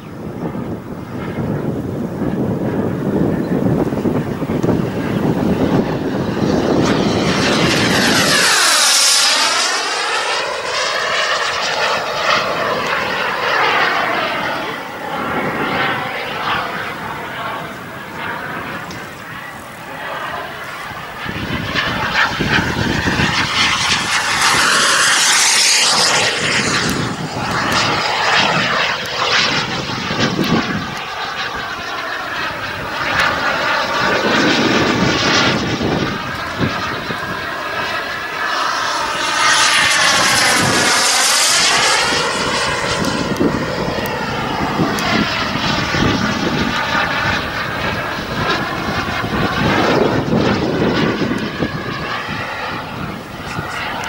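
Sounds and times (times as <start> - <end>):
jet turbine roar and whine: 0.0 - 54.0.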